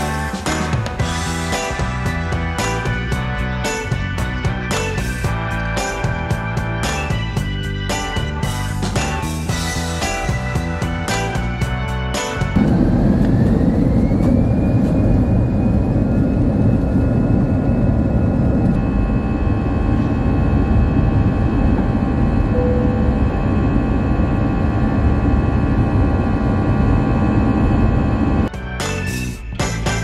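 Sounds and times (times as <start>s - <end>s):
jet engine rushing and whining: 0.4s - 28.5s.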